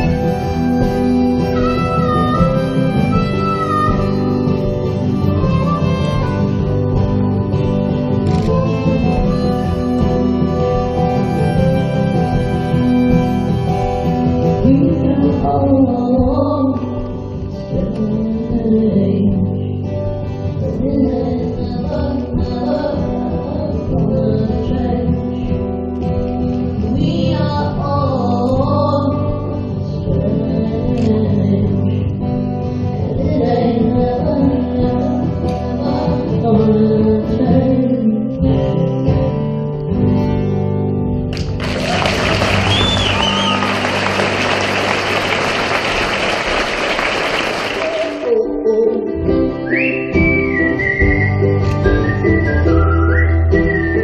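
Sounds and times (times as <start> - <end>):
acoustic guitar: 0.0 - 54.0
woman singing: 14.5 - 25.7, 26.8 - 32.3, 32.9 - 38.9, 47.8 - 50.2
whistled melody: 42.2 - 44.7, 49.6 - 54.0.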